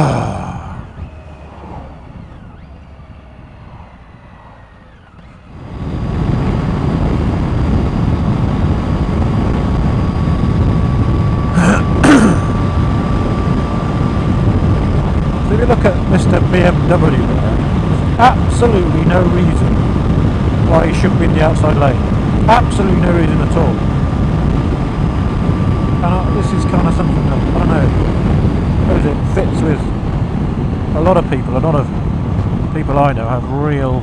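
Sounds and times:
motorcycle engine running: 0:00.0 - 0:31.0
thin steady whine: 0:00.0 - 0:34.0
wind and road rush: 0:00.0 - 0:34.0.

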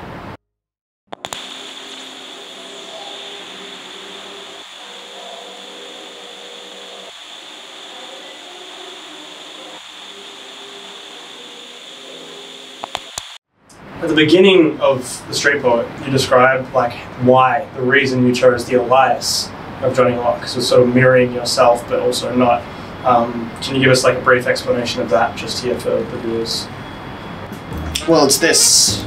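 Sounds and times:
steady hum and hiss: 0:01.3 - 0:26.7.

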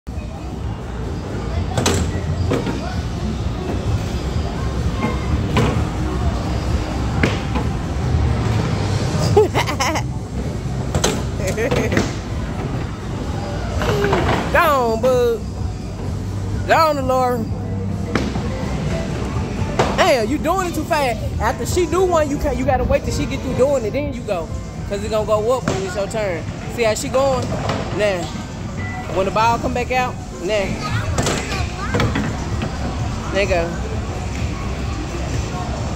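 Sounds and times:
background music: 0:00.1 - 0:35.9.

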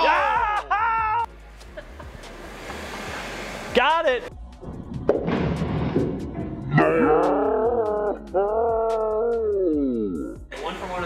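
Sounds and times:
bowling pins crashing and clattering: 0:05.0 - 0:06.6.

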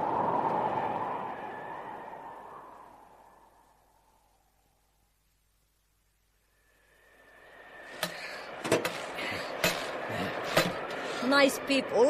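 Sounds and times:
steady hiss: 0:01.6 - 0:11.8.

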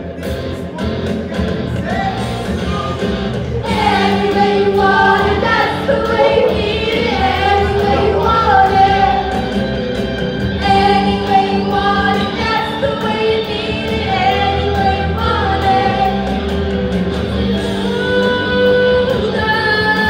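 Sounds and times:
rock band playing: 0:00.0 - 0:20.0
group singing rock song: 0:01.7 - 0:20.0.

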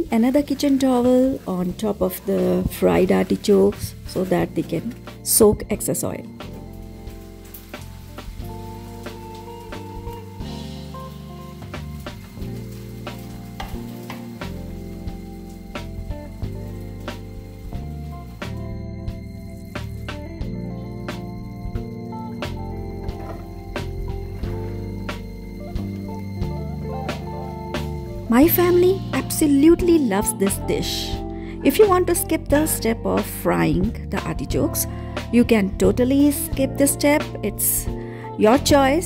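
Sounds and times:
curry bubbling and sizzling in a pan: 0:00.0 - 0:05.2, 0:06.3 - 0:26.6
soft background music: 0:00.0 - 0:39.0.

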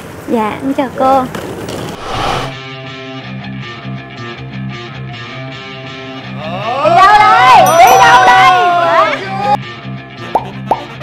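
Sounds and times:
people exclaiming and laughing: 0:06.6 - 0:09.6
light background music: 0:06.9 - 0:09.5
rising pop sound effects: 0:10.4 - 0:10.9.

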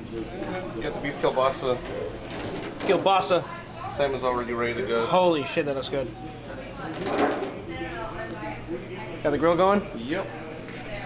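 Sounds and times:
faint murmuring voices: 0:00.0 - 0:11.0.

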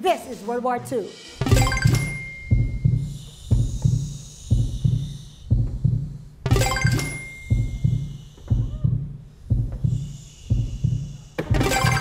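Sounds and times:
low heartbeat-like double thump: 0:01.4 - 0:11.8.

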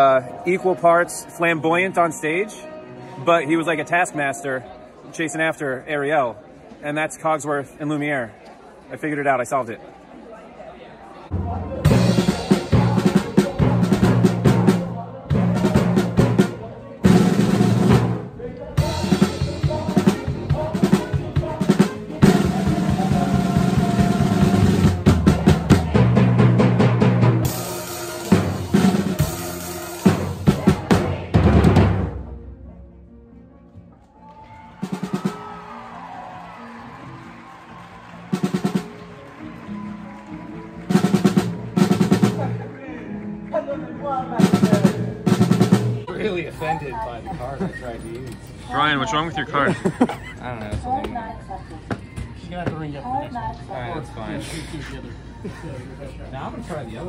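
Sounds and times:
pit band playing: 0:00.0 - 0:06.2, 0:11.3 - 0:47.0
drum kit with snare and cymbals: 0:11.3 - 0:32.6, 0:34.8 - 0:35.8, 0:38.2 - 0:39.1, 0:40.8 - 0:42.6, 0:44.4 - 0:46.3.

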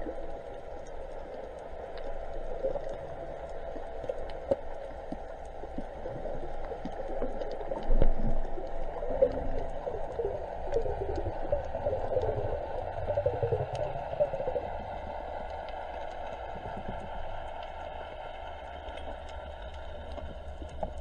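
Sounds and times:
faint clicks: 0:00.0 - 0:21.0
gurgling water: 0:00.0 - 0:21.0
underwater rumble of moving water: 0:00.0 - 0:21.0.

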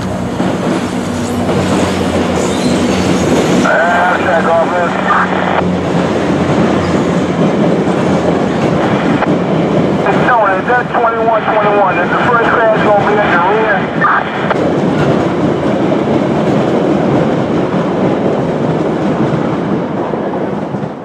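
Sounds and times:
diesel locomotive engine running: 0:00.0 - 0:19.3
train wheels rolling on rails: 0:00.0 - 0:21.0.

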